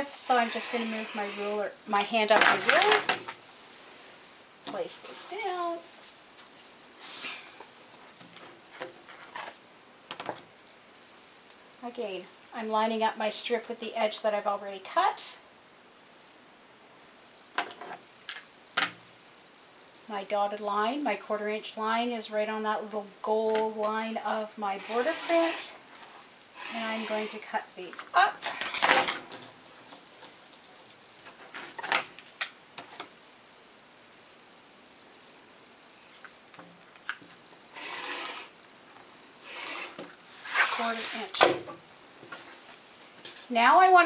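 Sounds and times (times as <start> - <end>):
rotary cutter scraping: 0.4 - 1.6, 24.8 - 25.8, 37.8 - 38.6, 39.5 - 41.2.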